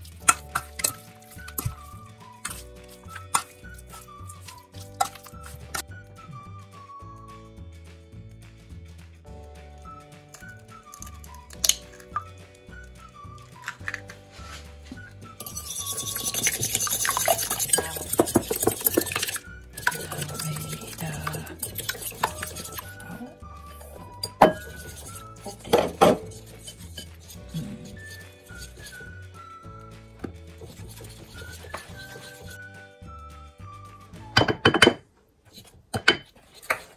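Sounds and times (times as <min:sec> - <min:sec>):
whisk beating against glass: 0:00.0 - 0:05.8, 0:15.2 - 0:32.8
background music: 0:00.0 - 0:35.0
egg cracking on glass bowl: 0:00.1 - 0:01.8, 0:10.3 - 0:12.4, 0:15.4 - 0:23.0.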